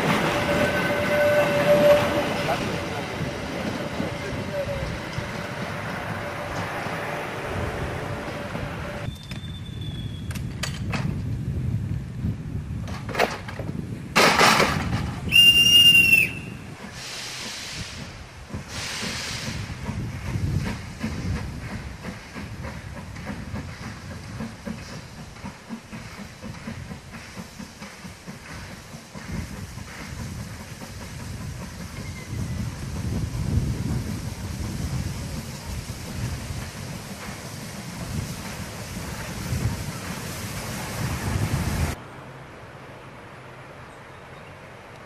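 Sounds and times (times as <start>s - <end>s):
steam locomotive whistle: 0.2s - 2.7s, 15.3s - 18.0s
locomotive pulsing rumble: 14.8s - 42.2s
steam hissing: 15.2s - 42.0s.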